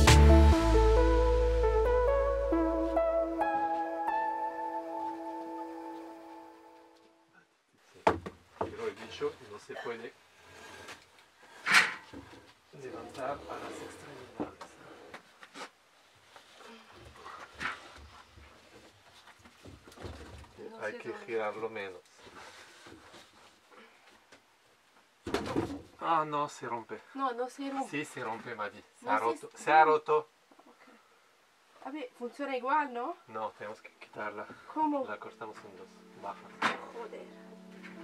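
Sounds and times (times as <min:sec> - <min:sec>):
plasterboard knocks and bumps: 0:08.0 - 0:08.8, 0:25.2 - 0:25.9.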